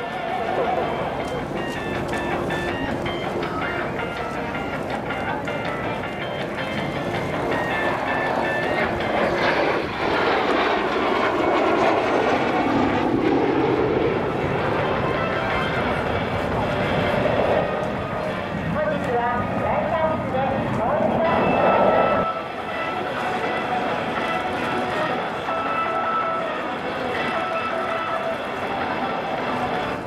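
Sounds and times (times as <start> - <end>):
public-address music: 0.0 - 11.8, 21.8 - 30.0
jet engines passing: 0.0 - 30.0.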